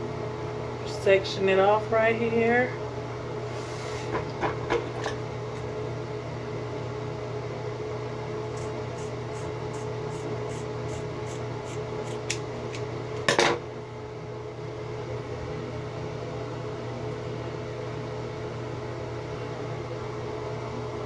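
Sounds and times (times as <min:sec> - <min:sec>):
bathroom fan humming: 0:00.0 - 0:21.0.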